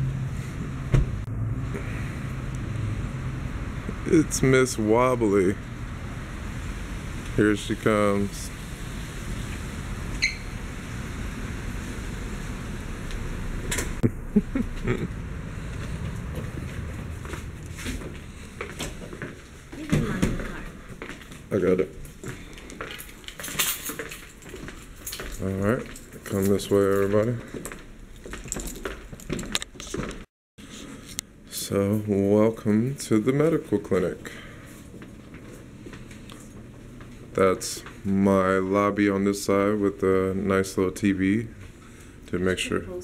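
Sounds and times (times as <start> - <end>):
traffic: 0.0 - 38.7
small metal objects jingling: 22.9 - 27.3, 28.1 - 29.6.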